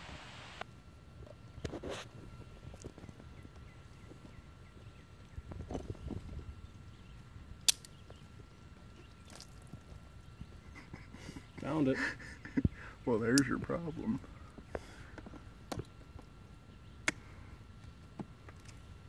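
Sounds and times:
sharp click: 0:07.6 - 0:08.0
hand tool clicks and rustles: 0:07.6 - 0:08.2.

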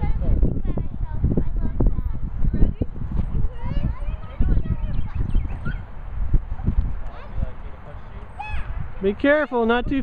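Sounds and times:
wind buffeting microphone: 0:00.0 - 0:10.0
children calling out: 0:08.4 - 0:09.7.

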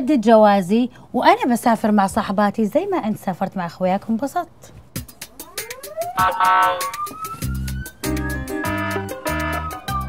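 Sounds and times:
rising siren-like glide: 0:05.4 - 0:09.8
low game-show buzzer blasts: 0:06.2 - 0:07.0, 0:08.6 - 0:09.7.

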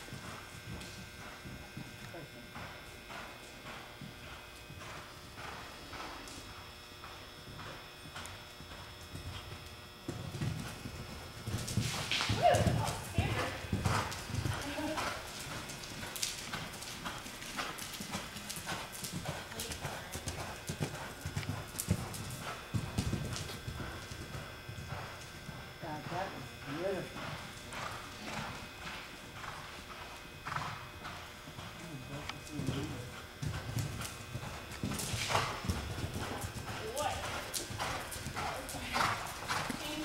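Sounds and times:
horse hoofbeats on dirt: 0:00.0 - 0:06.3, 0:07.0 - 0:40.0.

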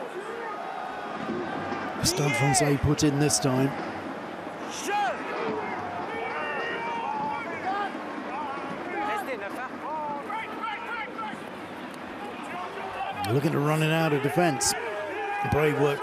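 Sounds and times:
players shouting: 0:00.0 - 0:16.0
stadium crowd noise: 0:00.0 - 0:16.0.

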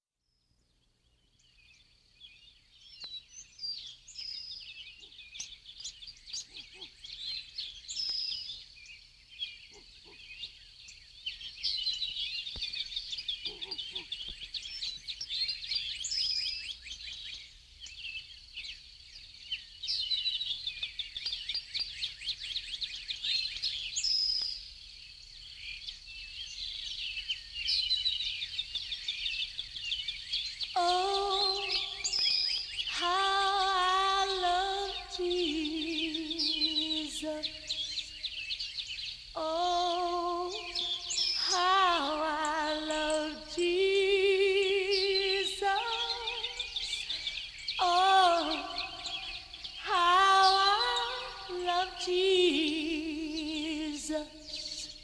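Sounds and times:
birds chirping and twittering: 0:00.2 - 0:55.0.

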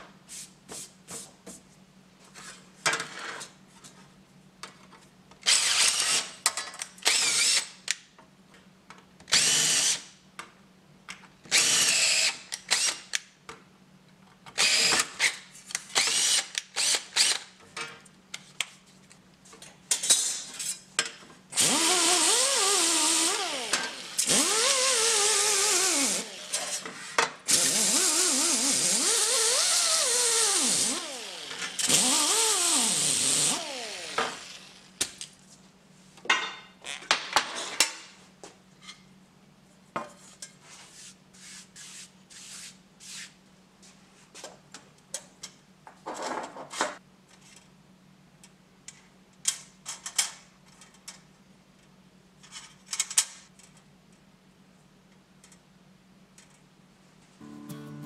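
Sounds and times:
cordless drill whining: 0:05.5 - 0:06.3, 0:07.1 - 0:07.7, 0:14.6 - 0:15.2, 0:16.0 - 0:17.4, 0:21.6 - 0:26.7, 0:27.5 - 0:34.8.

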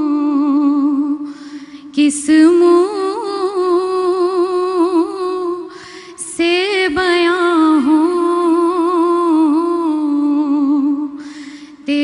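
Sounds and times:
girl breathing: 0:01.2 - 0:02.0, 0:05.7 - 0:06.3, 0:11.1 - 0:11.9.

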